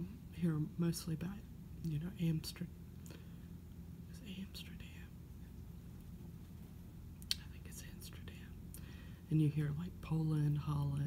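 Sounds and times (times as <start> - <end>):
woman whispering: 4.1 - 5.2, 7.3 - 8.6.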